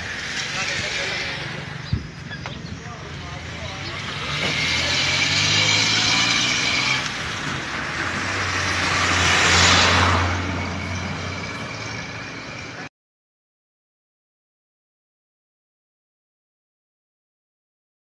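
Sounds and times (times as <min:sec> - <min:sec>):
vehicle engine humming: 0:00.0 - 0:12.9.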